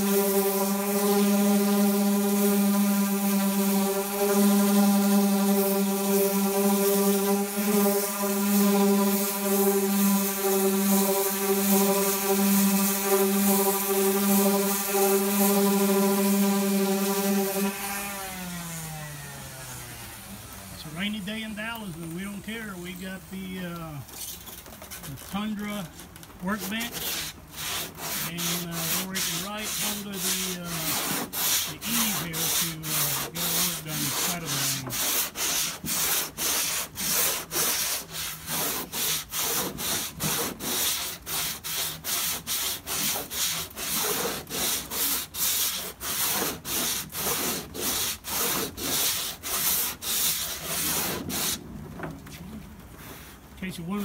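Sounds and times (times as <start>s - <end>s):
sanding block scraping: 0.0s - 20.2s, 20.8s - 25.8s, 26.4s - 51.6s, 53.1s - 54.0s.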